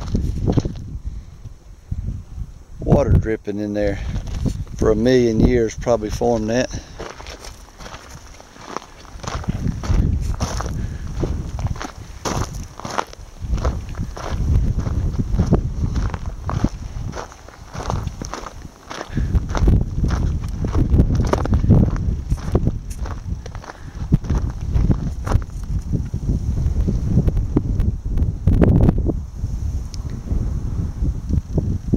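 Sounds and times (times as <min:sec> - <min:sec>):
footsteps on gravel: 0:00.0 - 0:00.9, 0:03.8 - 0:05.0, 0:06.0 - 0:26.2
wind rumbling on microphone: 0:00.0 - 0:31.9.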